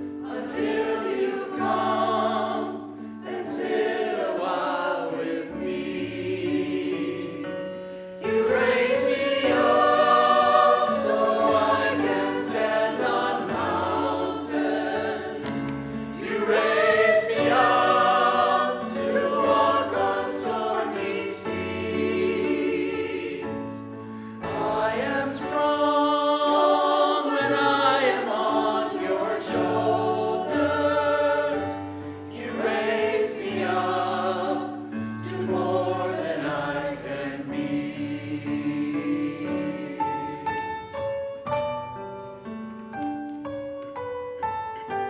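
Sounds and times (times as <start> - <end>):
mixed choir singing: 0.0 - 40.9.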